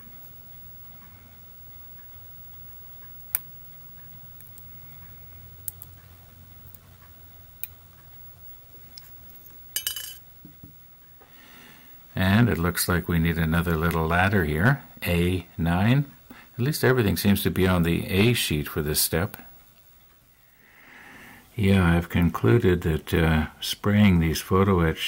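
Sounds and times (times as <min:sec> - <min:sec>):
metal clinks clattering: 0:09.8 - 0:10.2.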